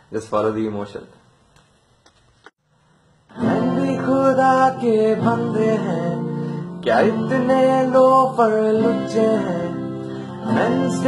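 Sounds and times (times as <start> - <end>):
acoustic guitar strumming: 3.3 - 11.0
man singing: 3.4 - 11.0.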